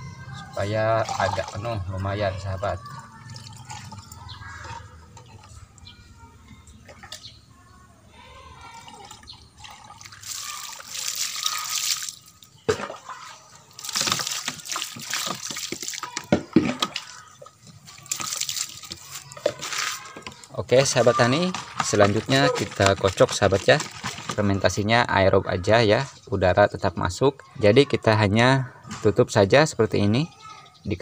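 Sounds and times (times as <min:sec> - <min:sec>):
water pouring into plastic bottle: 0:00.9 - 0:02.1, 0:02.8 - 0:05.5, 0:08.7 - 0:12.5, 0:13.7 - 0:24.9
water dripping: 0:02.8 - 0:06.0, 0:08.6 - 0:20.9.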